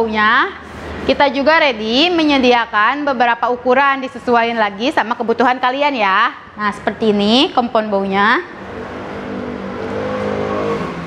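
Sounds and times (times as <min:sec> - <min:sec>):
vehicle engine droning: 0:08.2 - 0:11.0.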